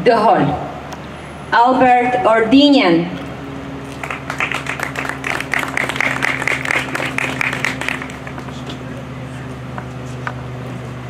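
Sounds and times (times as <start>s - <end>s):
audience applauding: 3.9s - 8.7s.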